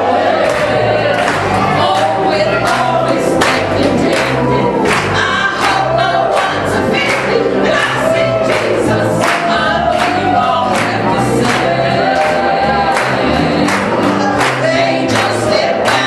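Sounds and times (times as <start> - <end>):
gospel choir singing: 0.0 - 16.0.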